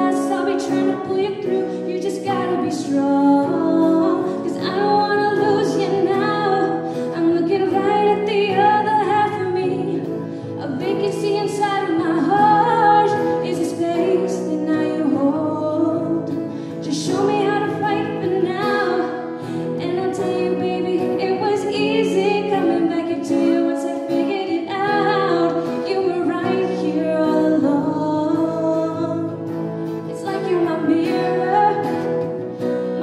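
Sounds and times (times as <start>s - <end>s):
acoustic guitar: 0.0s - 33.0s
woman singing pop song: 0.0s - 33.0s.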